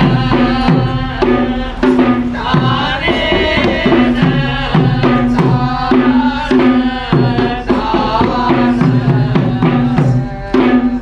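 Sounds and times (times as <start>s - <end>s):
drums in steady rhythm: 0.0s - 11.0s.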